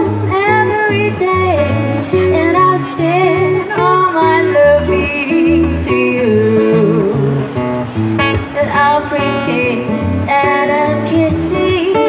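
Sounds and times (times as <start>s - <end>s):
woman singing: 0.0s - 7.2s, 8.4s - 12.0s
acoustic guitar: 0.0s - 12.0s.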